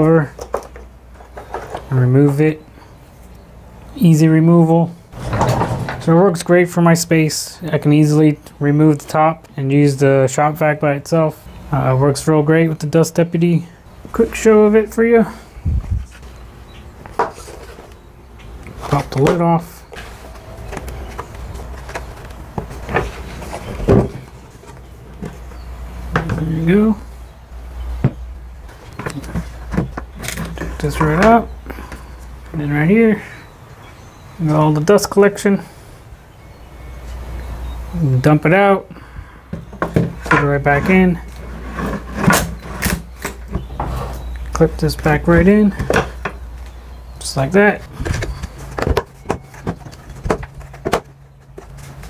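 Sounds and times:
plastic bucket knocking and scraping: 5.2 - 6.1.

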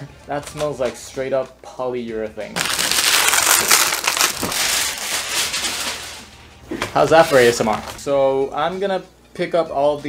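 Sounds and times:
plastic packaging crinkling: 2.6 - 6.4.

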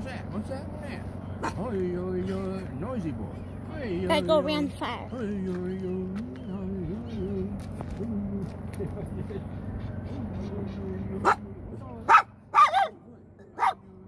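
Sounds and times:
man chanting: 5.1 - 9.3
dog barking: 11.2 - 11.5, 12.1 - 13.0, 13.6 - 13.9.

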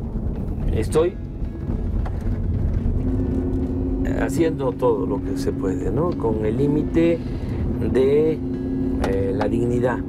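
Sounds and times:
road and engine rumble: 0.0 - 10.0
steady hum tone: 1.2 - 10.0.

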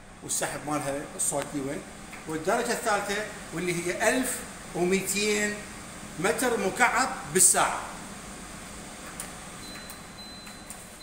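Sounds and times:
range hood fan rushing air: 0.0 - 11.0.

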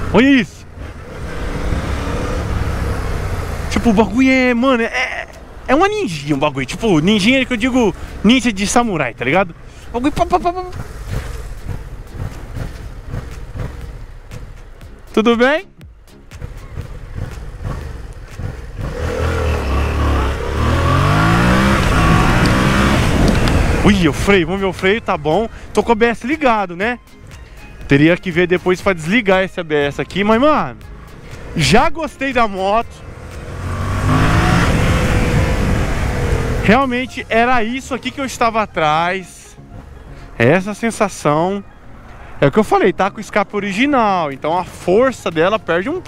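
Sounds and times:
motorcycle engine accelerating: 0.0 - 4.4, 10.1 - 14.6, 16.3 - 24.6, 33.0 - 36.8
motorcycle engine idling: 9.5 - 15.0, 15.8 - 21.0.

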